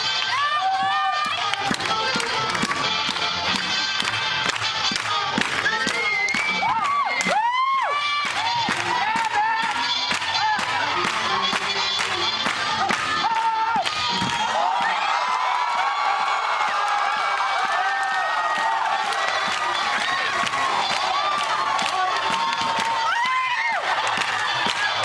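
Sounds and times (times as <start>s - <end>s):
up-tempo swing music: 0.0s - 15.1s, 18.9s - 25.0s
crowd cheering and whooping: 5.6s - 10.7s, 13.1s - 25.0s.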